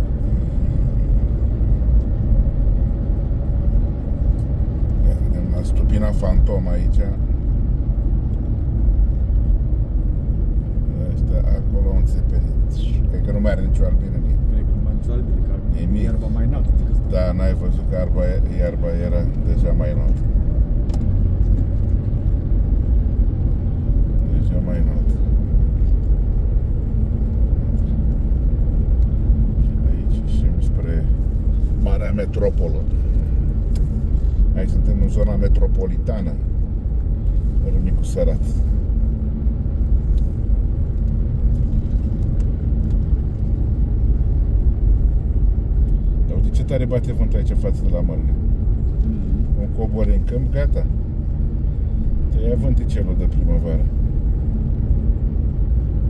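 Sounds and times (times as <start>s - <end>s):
car engine and tyre noise: 0.0s - 56.0s.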